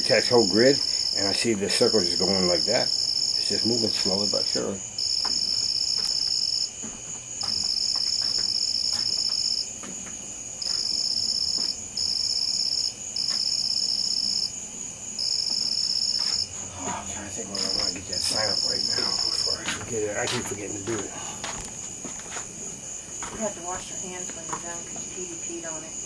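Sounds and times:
high pulsing insect trill: 0.0 - 26.0
lower insect trills: 0.0 - 26.0.

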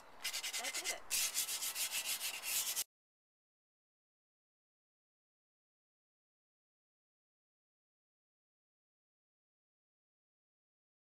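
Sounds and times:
sanding stoneware pots: 0.0 - 2.9.

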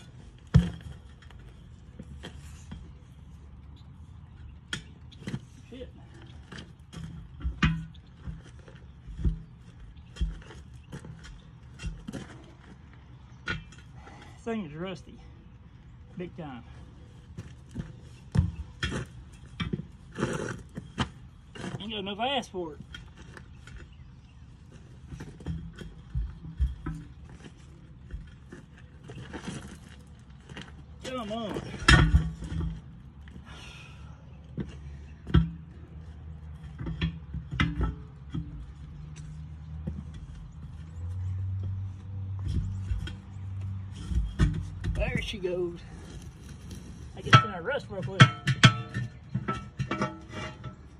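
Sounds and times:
tire scraping and creaking: 0.0 - 50.9
steel bar clanking on wheel: 46.8 - 50.9.

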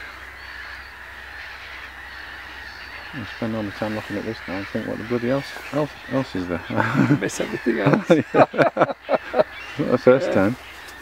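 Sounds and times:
distant waterbirds calling: 0.0 - 11.0.

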